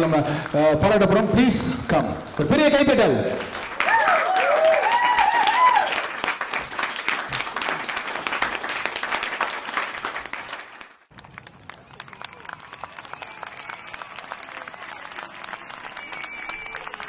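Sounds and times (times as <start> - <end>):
audience applauding: 0.0 - 17.0.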